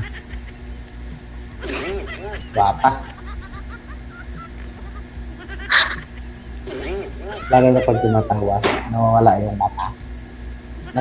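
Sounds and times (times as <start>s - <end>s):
steady low hum: 0.0s - 11.0s
person laughing: 1.6s - 8.8s.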